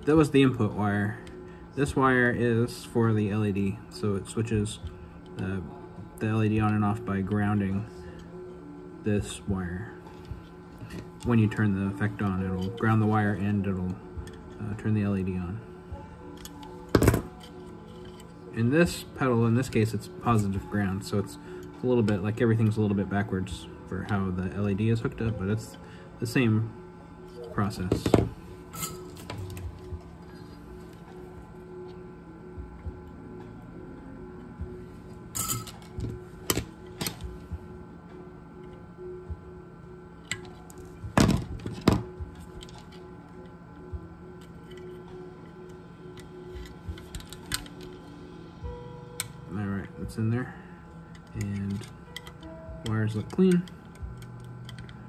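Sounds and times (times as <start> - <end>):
steady low hum: 0.0 - 55.0
metal tools clicking and tapping: 16.4 - 18.3, 51.2 - 55.0.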